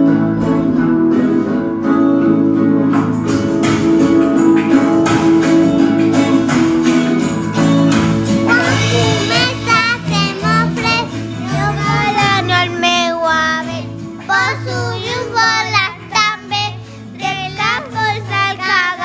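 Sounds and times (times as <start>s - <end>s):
instrumental backing with bass: 0.0s - 19.0s
child singing: 8.4s - 19.0s.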